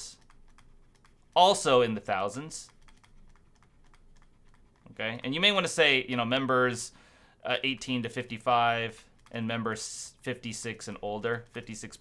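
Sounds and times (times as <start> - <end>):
stylus writing on tablet: 0.0 - 6.0, 7.7 - 12.0.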